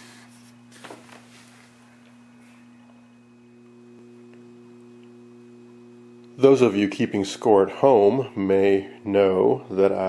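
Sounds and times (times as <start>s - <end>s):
faint electrical hum: 0.0s - 10.0s
higher hum tone: 0.0s - 10.0s.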